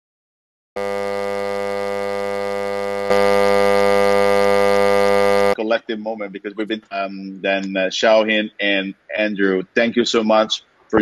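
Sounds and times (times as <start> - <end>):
low-pitched electrical buzz: 0.8 - 7.8.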